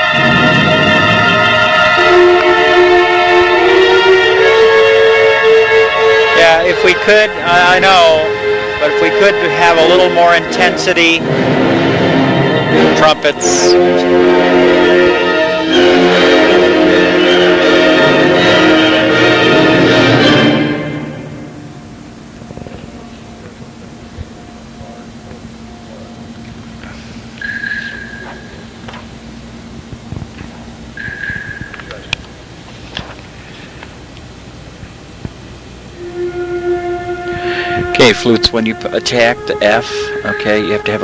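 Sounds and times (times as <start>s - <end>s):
flutes playing low note: 0.0s - 29.6s, 35.8s - 41.0s
wind ensemble playing: 0.0s - 32.6s, 35.0s - 41.0s.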